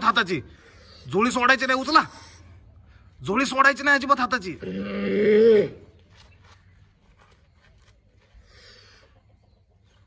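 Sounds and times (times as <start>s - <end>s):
faint chicken clucking: 4.7s - 10.0s.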